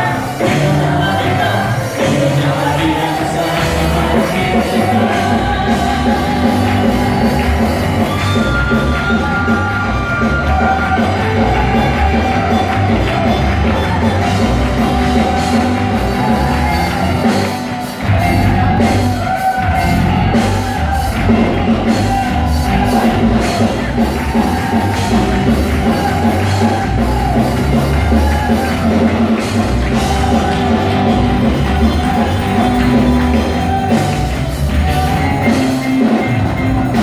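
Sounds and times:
drums: 0.0 - 37.0
people singing: 0.0 - 37.0
worship music: 0.0 - 37.0.

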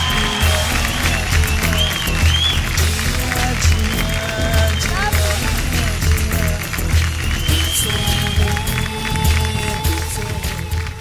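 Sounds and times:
loud music with heavy beat: 0.0 - 11.0.

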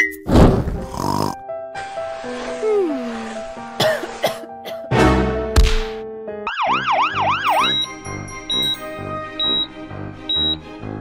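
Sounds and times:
cartoon siren wail: 6.5 - 7.7
children's background music: 6.6 - 11.0.

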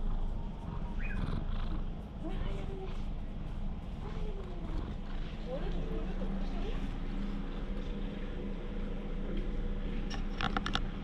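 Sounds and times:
cat purring: 0.0 - 7.0.

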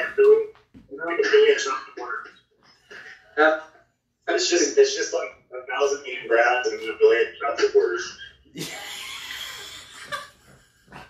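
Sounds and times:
man laughing breathily: 8.6 - 11.0.

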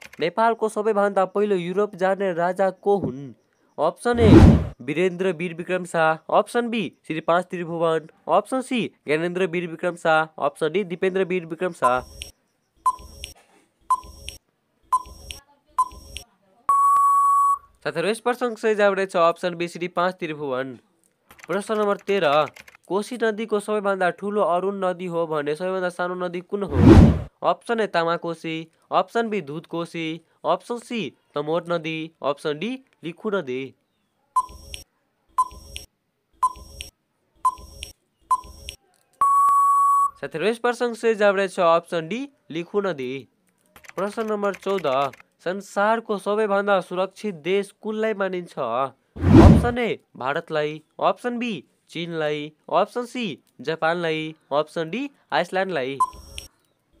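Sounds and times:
short electronic beeping ticks: 11.8 - 14.4, 15.0 - 17.6, 34.4 - 34.8, 35.4 - 36.9, 37.5 - 40.2, 56.0 - 56.5
short beeps: 15.8 - 17.7, 39.2 - 40.2, 56.0 - 56.5
long steady beep: 16.7 - 17.7, 39.2 - 40.2.

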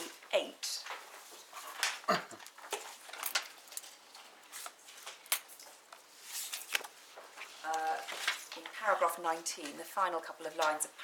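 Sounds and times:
person coughing: 2.0 - 2.4.

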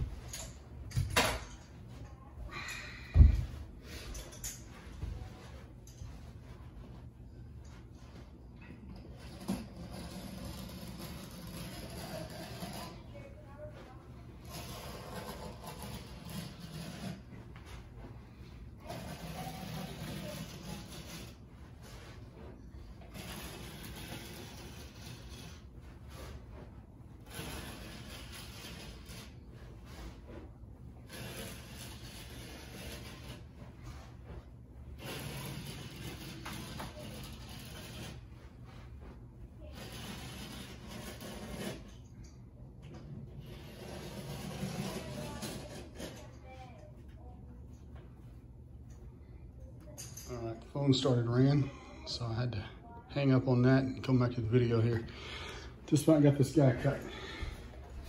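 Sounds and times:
blade cutting through carpet: 9.1 - 13.1, 14.4 - 17.8, 18.8 - 26.4, 27.2 - 30.2, 31.1 - 33.5, 34.9 - 38.3, 39.7 - 42.0, 43.4 - 46.3.

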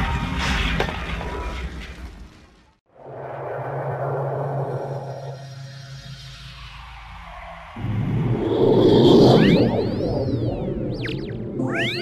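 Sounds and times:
sweeping electronic tones: 7.8 - 12.0.

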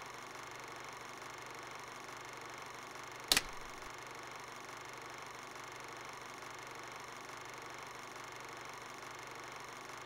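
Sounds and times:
clapperboard snap: 3.3 - 3.8.

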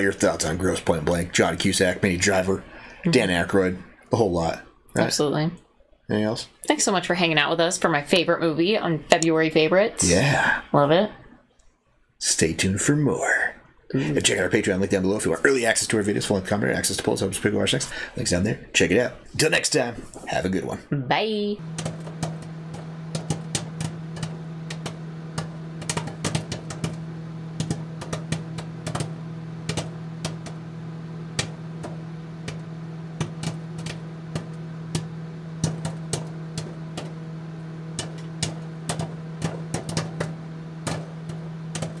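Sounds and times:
steady low hum: 0.0 - 11.4, 12.2 - 42.0
sharp clicks and crackles: 21.7 - 30.6, 31.3 - 42.0.

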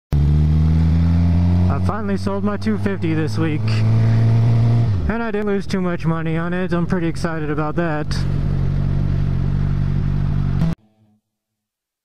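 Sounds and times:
motorcycle engine running: 0.1 - 10.8
wind and road noise: 0.1 - 10.8
man talking: 1.7 - 4.4, 5.0 - 8.4.

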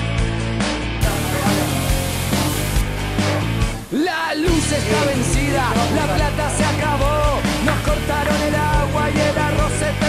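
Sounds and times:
rock music with guitar and drums: 0.0 - 10.0.

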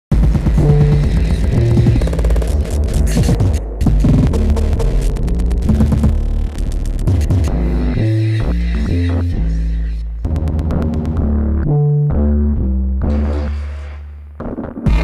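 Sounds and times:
bass-heavy electronic music: 0.1 - 15.0.

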